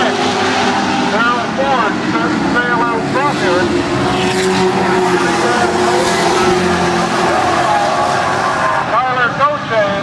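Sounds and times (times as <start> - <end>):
race car engines at high revs: 0.0 - 10.0.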